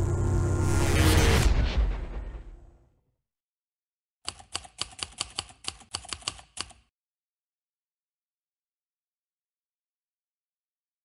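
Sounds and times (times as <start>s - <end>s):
typewriter keystrokes: 4.3s - 6.9s.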